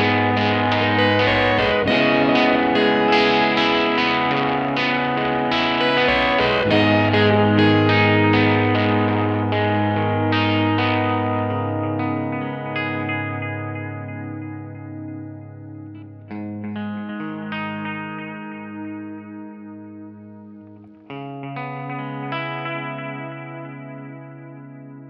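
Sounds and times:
sustained low tone: 0.0 - 17.8
plucked notes through effects: 0.0 - 25.0.

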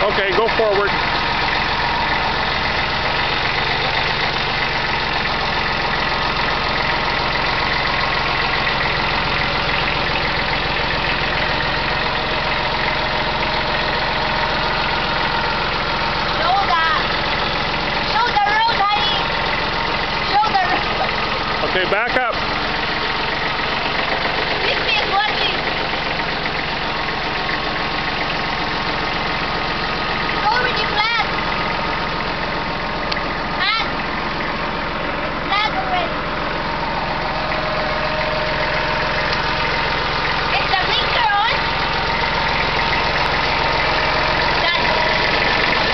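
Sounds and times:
tractor diesel engine running: 0.0 - 45.9.

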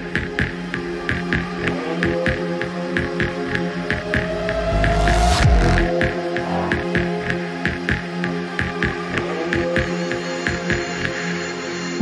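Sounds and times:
electronic music with steady beat: 0.0 - 12.0
low drone: 3.5 - 8.6.

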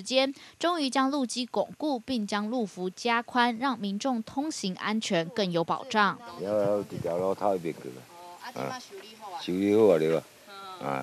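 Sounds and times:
person making broken vocal sounds: 8.6 - 8.8, 10.8 - 11.0.

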